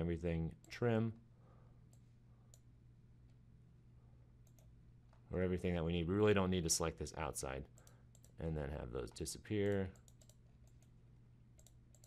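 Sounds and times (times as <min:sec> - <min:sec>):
steady low hum: 0:00.0 - 0:12.0
computer mouse clicks: 0:01.9 - 0:02.7, 0:04.4 - 0:05.2, 0:07.8 - 0:08.4, 0:09.6 - 0:11.0, 0:11.6 - 0:12.0.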